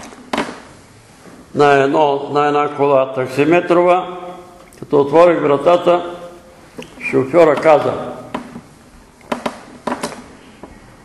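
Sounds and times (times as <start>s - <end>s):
person speaking: 1.5s - 8.6s.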